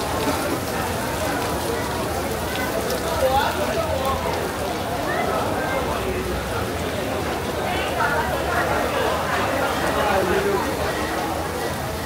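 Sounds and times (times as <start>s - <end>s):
people's voices: 0.0s - 12.0s
rain on paving and glass: 0.0s - 12.0s.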